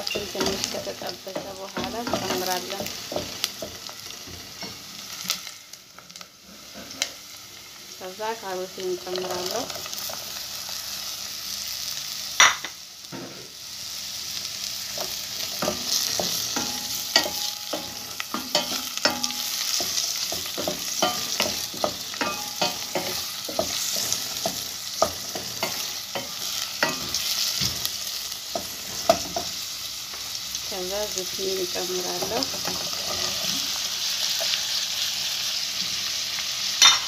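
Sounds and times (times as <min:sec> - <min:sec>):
vegetables sizzling in a pot: 0:00.0 - 0:37.0.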